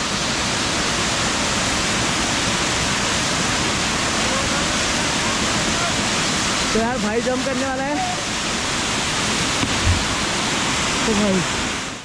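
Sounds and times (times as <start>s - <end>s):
waterfall pouring into pool: 0.0s - 12.0s.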